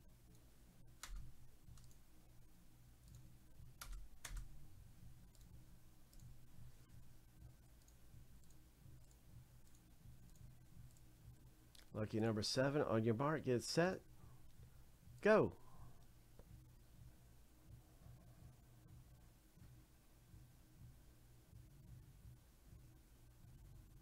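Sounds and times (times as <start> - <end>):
faint steady hum: 0.0 - 24.0
computer mouse clicks: 0.3 - 2.0, 3.0 - 4.5, 5.3 - 6.4, 7.8 - 11.1.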